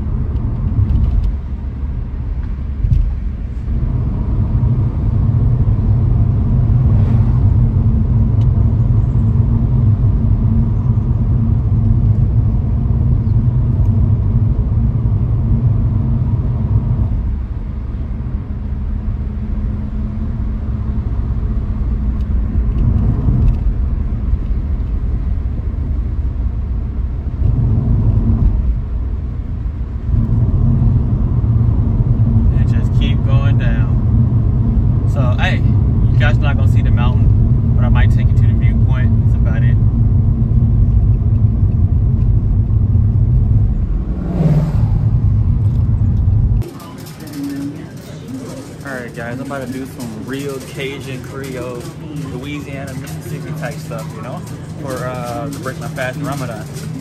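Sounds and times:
car engine and tyres rumbling: 0:00.0 - 0:57.0.

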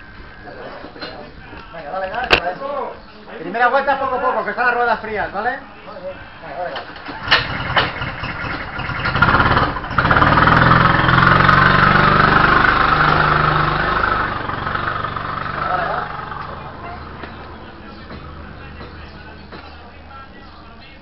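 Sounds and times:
go-kart engine running: 0:07.2 - 0:17.4.

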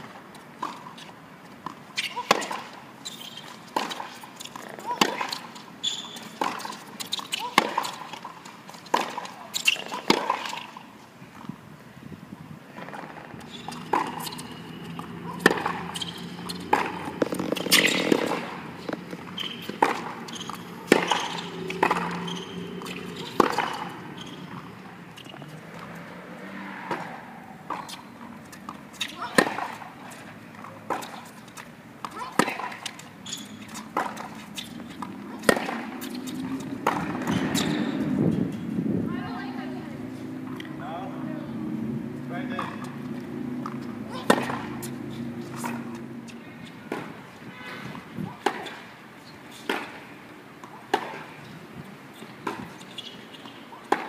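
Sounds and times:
tennis balls bouncing on court: 0:00.0 - 0:11.6, 0:12.6 - 0:54.0
tennis balls struck by rackets: 0:01.6 - 0:11.6, 0:12.6 - 0:54.0.

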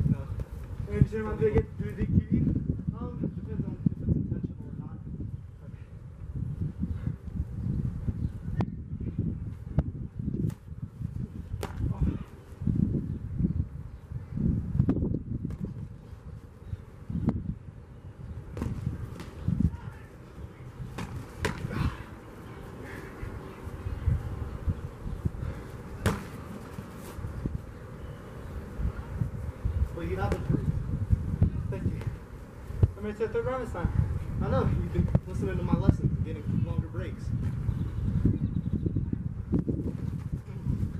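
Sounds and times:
wind rumble on microphone: 0:00.0 - 0:22.3, 0:23.1 - 0:26.2, 0:26.9 - 0:40.9
boxing gloves smacking: 0:20.9 - 0:21.9, 0:26.0 - 0:26.9.

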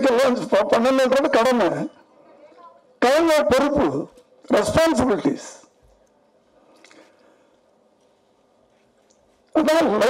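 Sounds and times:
wet mouth click: 0:06.8 - 0:07.0.

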